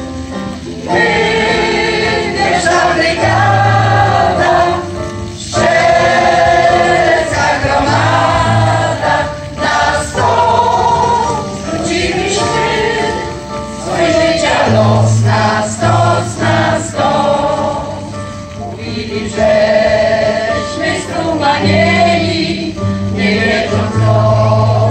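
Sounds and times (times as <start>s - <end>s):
mixed choir singing: 0.6s - 24.9s.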